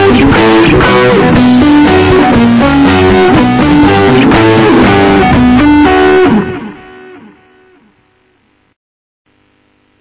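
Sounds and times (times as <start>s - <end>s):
electric guitar riff: 0.0s - 8.6s.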